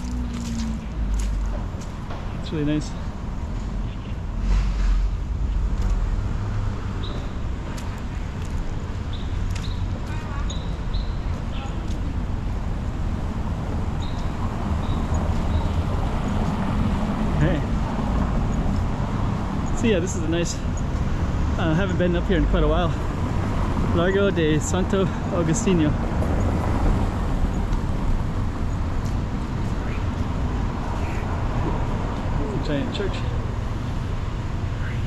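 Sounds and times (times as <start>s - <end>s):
city traffic rumble: 0.0s - 35.0s.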